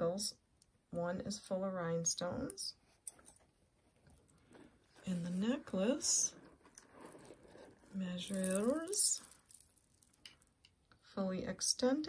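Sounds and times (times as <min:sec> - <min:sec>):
jewelry clicking and rustling: 0:03.0 - 0:10.8.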